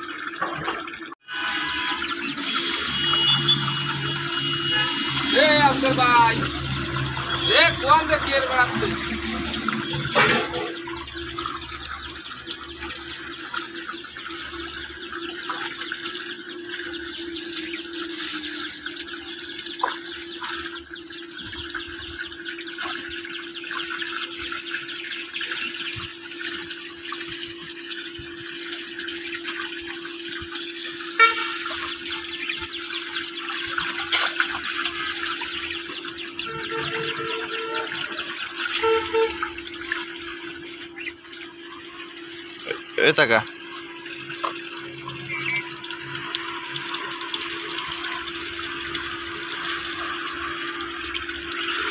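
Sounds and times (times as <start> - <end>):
water gushing from a pipe: 0.0 - 51.9.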